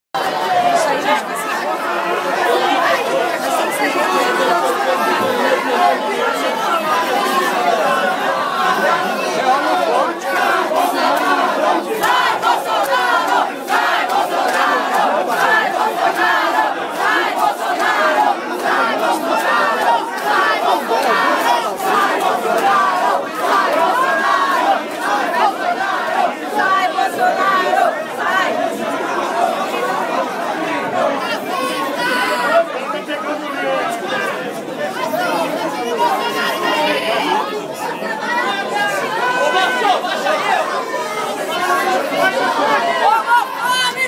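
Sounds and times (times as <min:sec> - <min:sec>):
crowd chanting and shouting: 0:00.0 - 0:44.0.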